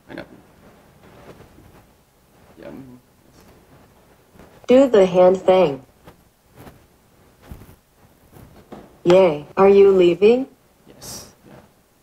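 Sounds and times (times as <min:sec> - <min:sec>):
faint room sounds: 0:00.0 - 0:12.0.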